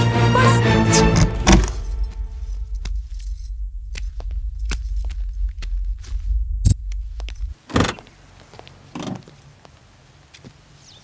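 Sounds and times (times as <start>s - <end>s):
steady low hum: 1.2s - 7.6s.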